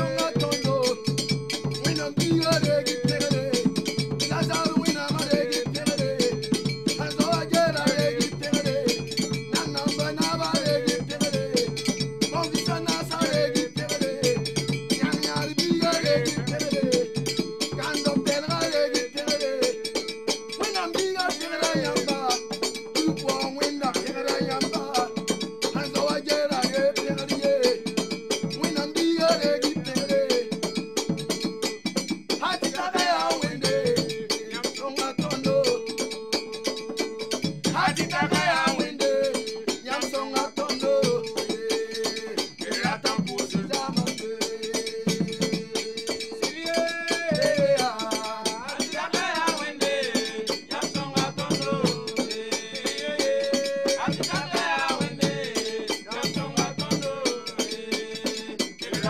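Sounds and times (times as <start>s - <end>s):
hand drums in fast rhythm: 0.0s - 59.0s.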